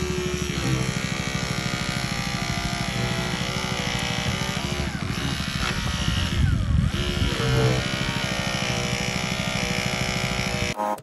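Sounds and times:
small engine buzzing: 0.0s - 11.0s.

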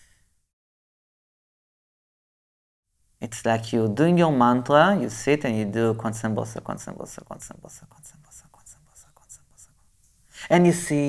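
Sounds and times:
man whispering: 6.0s - 11.0s.

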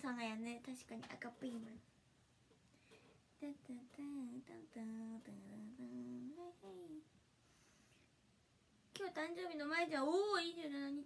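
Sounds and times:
woman humming: 3.7s - 7.0s.

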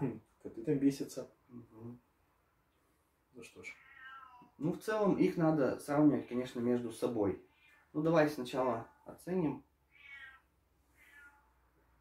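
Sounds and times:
cat meowing faintly: 3.4s - 4.6s, 7.4s - 9.2s, 9.9s - 11.8s.

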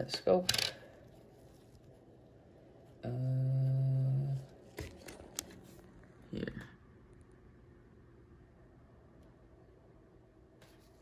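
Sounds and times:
man humming: 3.0s - 4.5s.

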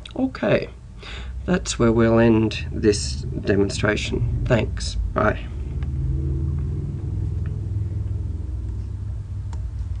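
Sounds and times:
low rumbling hum: 0.0s - 10.0s.

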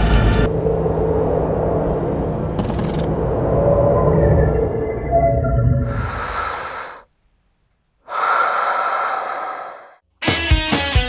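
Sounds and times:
breathy rushes of noise: 5.8s - 7.1s, 8.0s - 10.0s.

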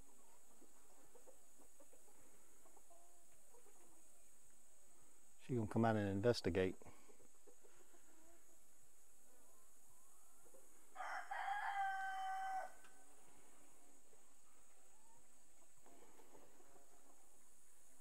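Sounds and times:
rooster crowing: 10.9s - 13.0s.

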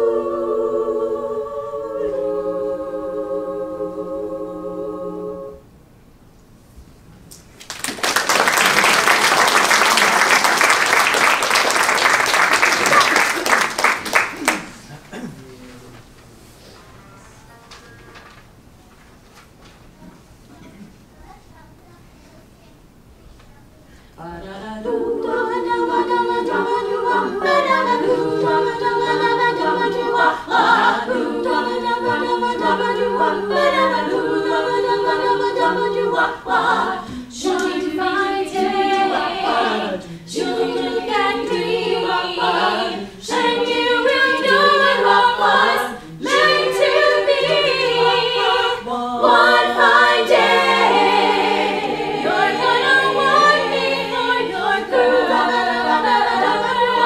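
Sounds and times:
women singing a cappella: 0.0s - 5.8s, 24.1s - 57.0s.

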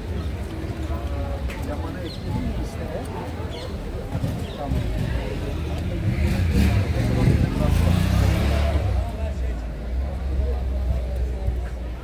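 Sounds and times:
people chattering: 0.0s - 12.0s
vehicle engine rumble: 0.0s - 12.0s.

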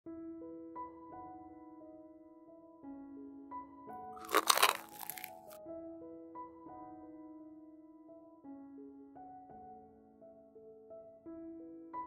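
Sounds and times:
soft piano music: 0.1s - 4.2s, 5.3s - 12.0s
fried dough crunching: 4.2s - 5.6s.

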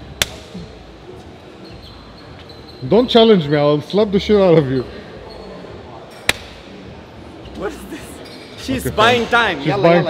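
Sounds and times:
gym background noise: 0.0s - 10.0s
hand slapping skin: 0.2s - 0.5s, 6.3s - 6.5s.

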